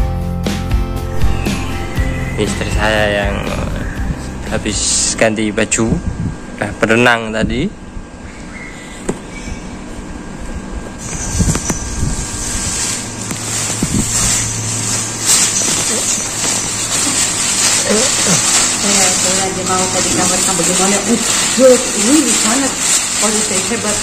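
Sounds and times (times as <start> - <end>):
steady low hum: 1.0 - 23.3
voices: 1.2 - 5.6, 15.7 - 24.0
plastic float rustling into bag: 12.4 - 24.0.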